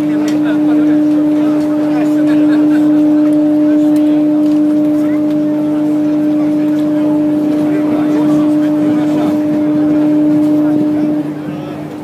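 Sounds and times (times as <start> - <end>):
crowd chatter: 0.0 - 12.0
ship's horn blowing: 0.0 - 12.0.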